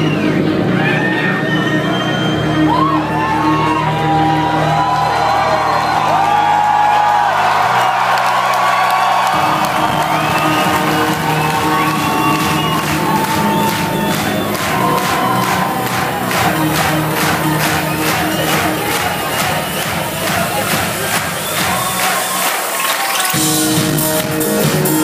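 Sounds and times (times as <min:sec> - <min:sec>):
crowd cheering and whooping: 0:00.0 - 0:23.7.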